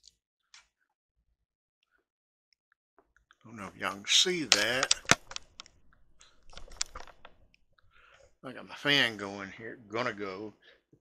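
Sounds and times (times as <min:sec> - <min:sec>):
sharp clicks and light taps: 0:04.4 - 0:07.6.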